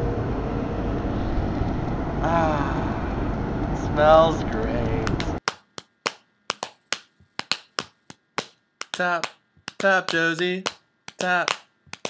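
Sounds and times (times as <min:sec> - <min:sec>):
finger snaps: 0:06.1 - 0:12.0.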